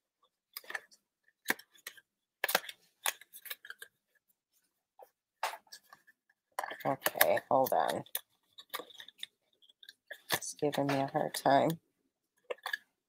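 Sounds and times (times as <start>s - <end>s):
cardstock box rustling and crinkling: 5.5s - 11.7s.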